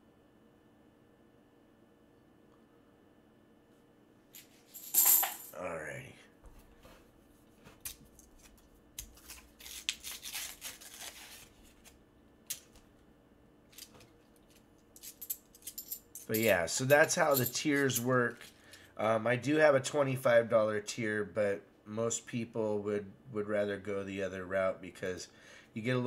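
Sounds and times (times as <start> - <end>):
coins clinking: 4.4 - 5.6, 13.7 - 18.6.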